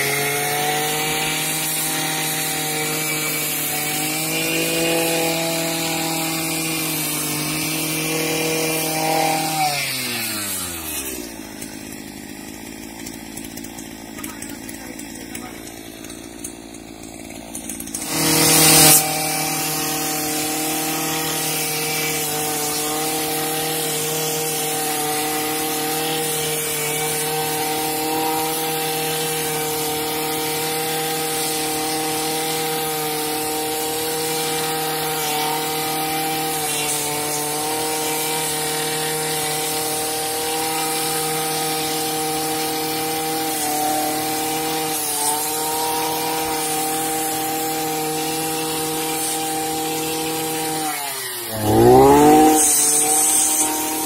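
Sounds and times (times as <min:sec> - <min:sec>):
brush cutter engine: 0:00.0 - 0:54.0.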